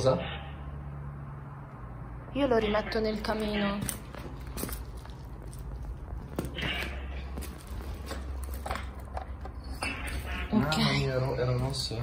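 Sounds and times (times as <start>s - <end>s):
footsteps on rubble and leaves: 3.8s - 9.1s.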